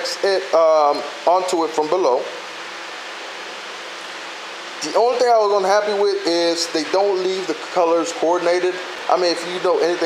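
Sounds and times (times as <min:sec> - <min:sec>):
man talking: 0:00.0 - 0:02.4, 0:04.8 - 0:10.0
background hiss: 0:00.0 - 0:10.0.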